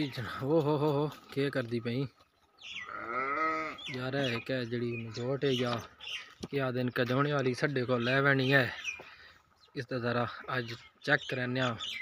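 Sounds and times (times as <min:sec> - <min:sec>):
calf bleating: 0:02.8 - 0:04.0.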